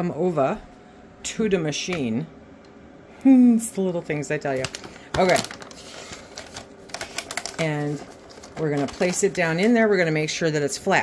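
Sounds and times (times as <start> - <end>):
mylar bag crinkling: 4.4 - 10.1.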